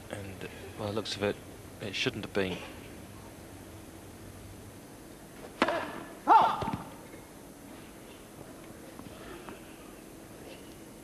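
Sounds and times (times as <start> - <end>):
line judge shouting: 6.2 - 6.7.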